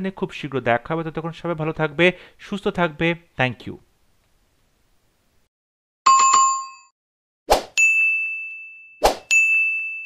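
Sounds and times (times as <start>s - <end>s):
bright ding: 7.8s - 10.0s.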